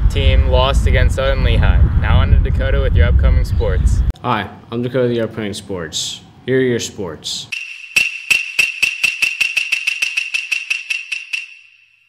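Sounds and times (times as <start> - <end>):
steady bright ring: 7.6 - 12.0.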